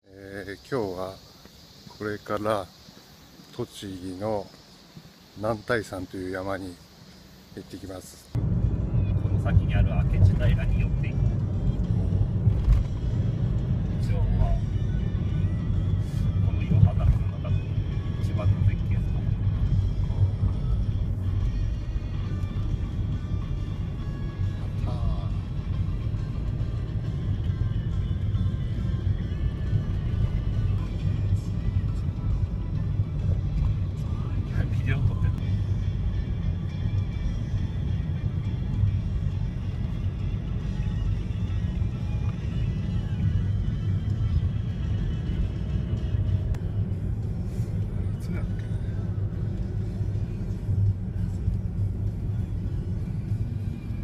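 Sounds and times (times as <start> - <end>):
car engine and road rumble: 0.4 - 54.0
background music: 8.4 - 54.0.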